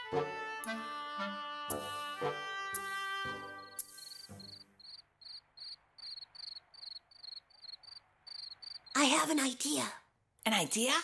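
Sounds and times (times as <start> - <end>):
music cue: 0.0 - 4.6
crickets chirping: 3.8 - 9.2.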